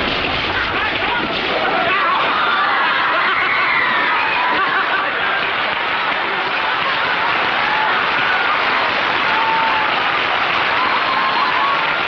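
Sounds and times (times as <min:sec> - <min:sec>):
people laughing and shouting: 0:00.0 - 0:12.0.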